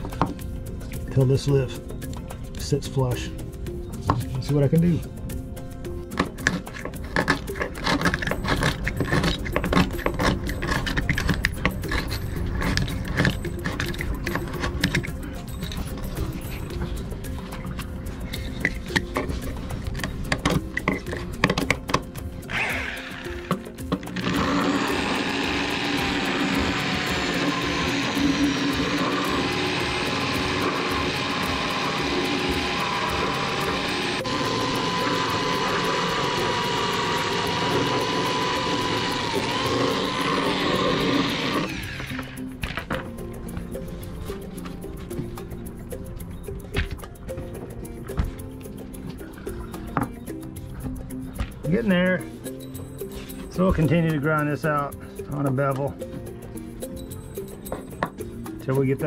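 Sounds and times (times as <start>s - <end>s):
knife scraping fiberglass: 6.2s - 15.7s
die grinder whining: 6.2s - 17.0s, 22.4s - 43.1s.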